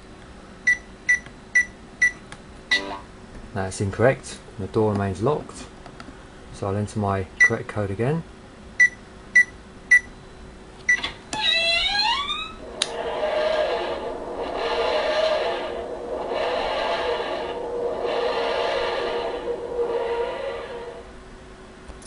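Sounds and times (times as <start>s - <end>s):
keypad beep: 8.8s - 10.1s
short rising sweep: 12.3s - 21.6s
wheezing groaning sound effect: 12.6s - 21.2s.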